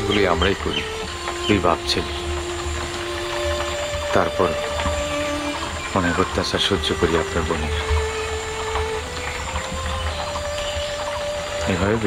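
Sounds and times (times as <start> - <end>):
soft music of held notes: 0.0 - 12.0.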